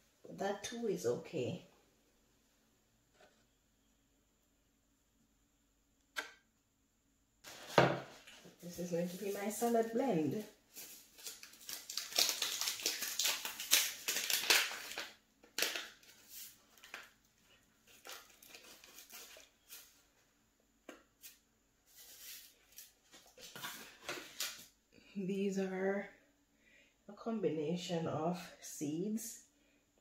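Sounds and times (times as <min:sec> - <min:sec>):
paper packet crinkling: 0:07.4 - 0:20.0.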